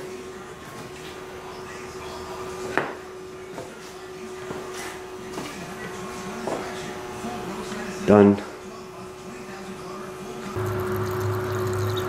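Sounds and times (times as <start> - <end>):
steady low hum: 10.5 - 12.0.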